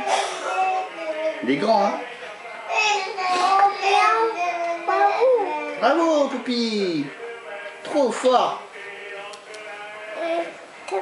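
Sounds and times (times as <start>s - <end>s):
toddler singing: 0.0s - 1.4s, 2.7s - 5.8s, 10.2s - 11.0s.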